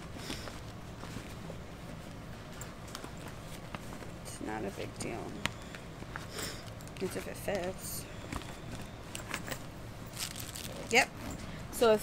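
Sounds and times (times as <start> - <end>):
soft rustling: 0.1 - 11.6.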